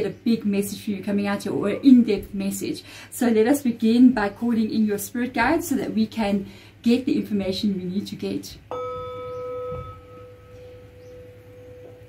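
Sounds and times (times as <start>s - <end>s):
mallet striking singing bowl: 8.7s - 12.0s
singing bowl ringing: 8.7s - 12.0s.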